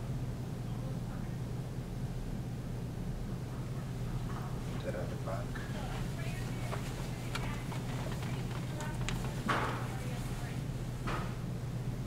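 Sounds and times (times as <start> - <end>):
steady low hum: 0.0 - 12.0
faint indistinct voices: 0.5 - 1.8, 3.4 - 11.4.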